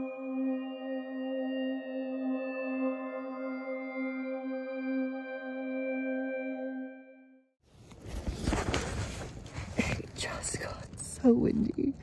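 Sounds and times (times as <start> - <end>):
ambient music tone: 0.0 - 7.5
tent fabric flapping: 7.7 - 10.0.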